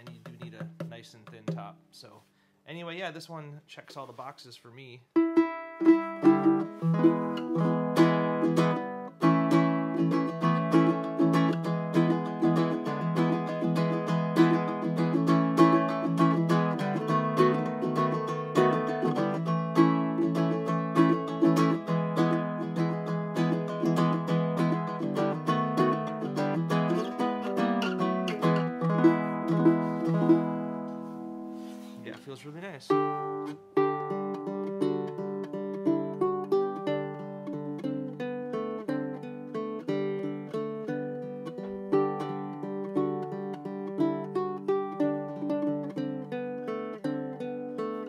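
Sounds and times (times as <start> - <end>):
ukulele plucked notes and chords: 5.1 - 48.0.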